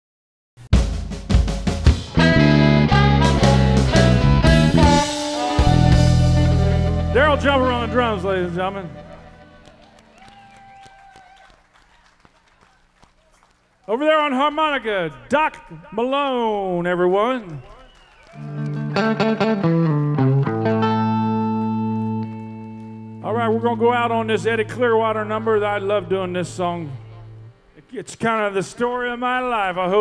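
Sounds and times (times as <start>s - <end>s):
blues band playing softly: 0.7s - 11.4s, 18.2s - 27.8s
electric guitar note ringing: 2.1s - 10.1s, 18.4s - 27.8s
person introducing band: 5.6s - 9.3s, 13.9s - 17.8s, 23.2s - 30.0s.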